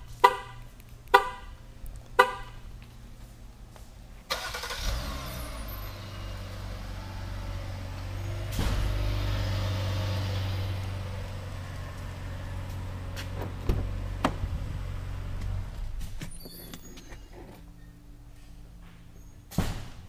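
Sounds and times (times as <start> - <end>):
car engine starting and idling: 0.0 - 19.2.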